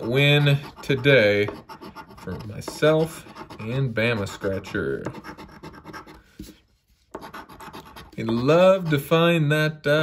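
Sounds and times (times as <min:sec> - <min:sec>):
coin scratching lottery ticket: 0:00.0 - 0:06.1, 0:07.2 - 0:09.0.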